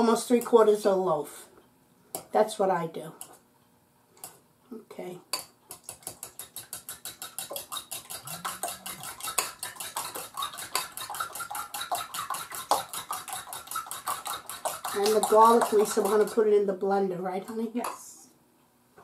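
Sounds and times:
fork clicking against bowl: 5.3s - 16.4s.

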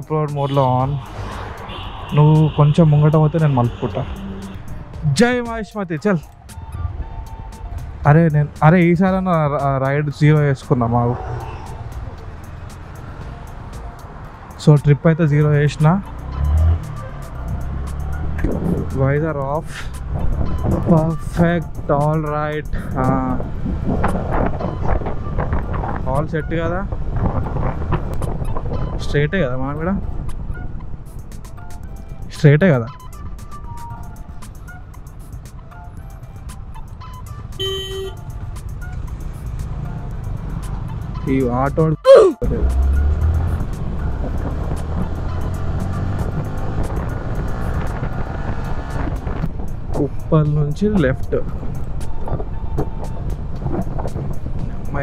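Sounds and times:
background music with steady beat: 0.0s - 29.1s, 29.9s - 55.0s
motorcycle engine and road noise: 0.0s - 55.0s
motorcycle engine cruising: 10.3s - 14.8s, 15.4s - 19.2s, 42.4s - 50.1s
wind rush on microphone: 18.4s - 19.0s, 22.8s - 31.4s, 43.3s - 50.4s, 51.3s - 55.0s.

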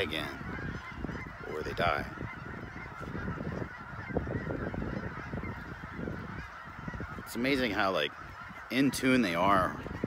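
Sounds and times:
geese honking: 0.0s - 10.0s.

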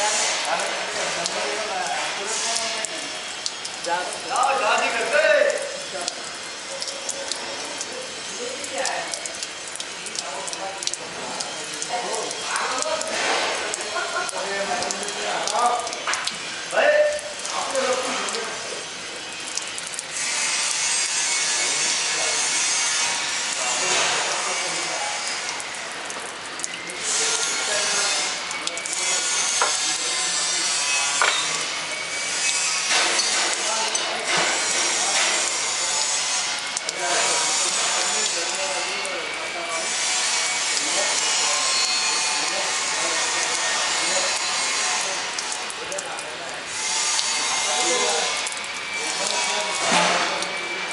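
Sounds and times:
water splashing from pipe: 0.0s - 50.9s.

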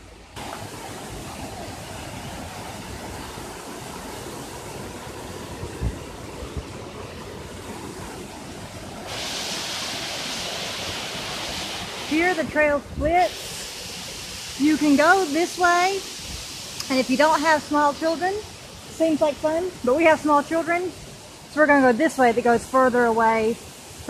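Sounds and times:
waterfall rushing: 0.0s - 24.0s.

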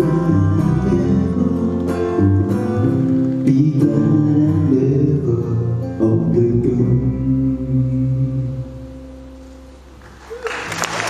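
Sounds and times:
audience applause: 10.0s - 11.0s.

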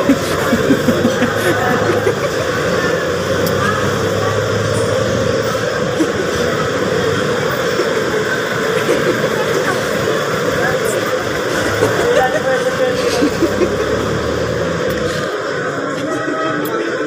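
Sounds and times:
street traffic: 0.0s - 17.0s.

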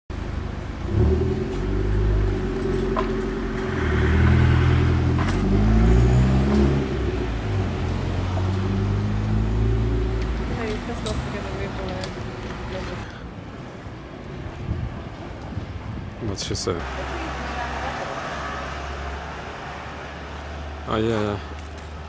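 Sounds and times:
low traffic rumble: 0.1s - 22.0s
car engine driving past: 0.8s - 11.7s.

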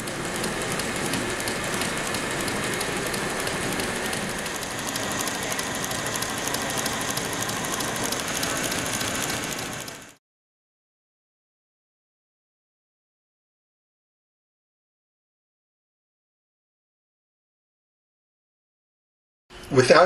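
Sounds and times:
sewing machine needle clattering: 0.0s - 10.2s.

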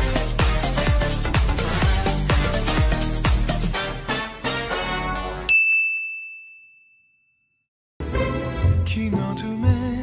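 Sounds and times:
music: 0.0s - 5.5s, 8.0s - 10.0s
high ding: 5.5s - 7.7s.

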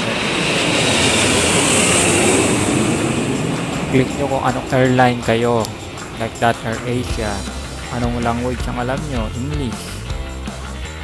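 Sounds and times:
loud steady rushing noise: 0.0s - 11.0s.

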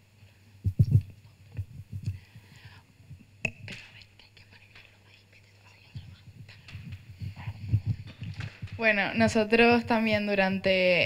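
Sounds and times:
soft low thumps: 0.6s - 3.7s, 5.8s - 10.8s
people whispering: 3.7s - 10.3s.

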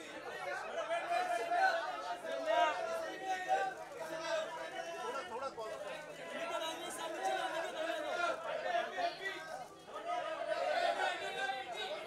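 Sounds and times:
dense chatter of voices: 0.0s - 12.0s.

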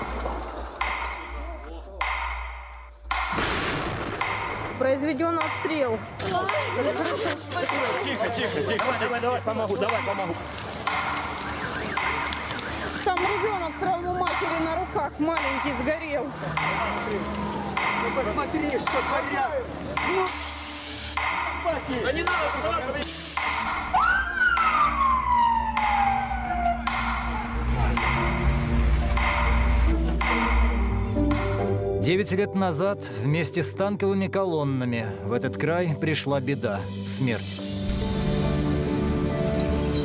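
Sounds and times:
people crying: 6.2s - 9.2s.

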